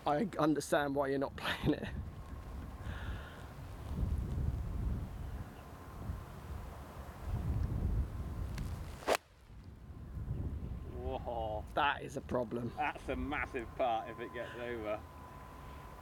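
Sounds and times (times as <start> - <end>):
wind noise on microphone: 1.3 - 13.4.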